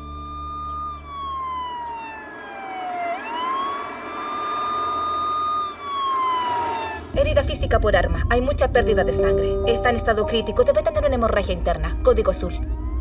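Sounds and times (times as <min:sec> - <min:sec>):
ambulance siren wailing: 0:00.0 - 0:07.2, 0:09.1 - 0:13.0.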